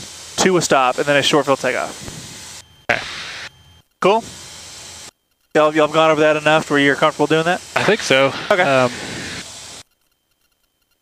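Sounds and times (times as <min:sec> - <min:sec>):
intercom engine and cabin hiss: 0:00.0 - 0:09.8.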